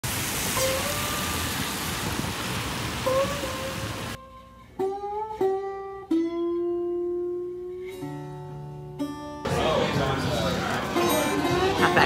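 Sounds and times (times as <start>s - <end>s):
rain on wet street: 0.0s - 4.2s.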